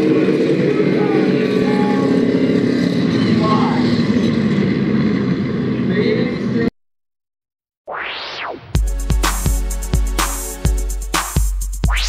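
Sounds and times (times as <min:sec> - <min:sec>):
people's voices: 0:00.0 - 0:04.4
race car engines droning: 0:00.0 - 0:06.7.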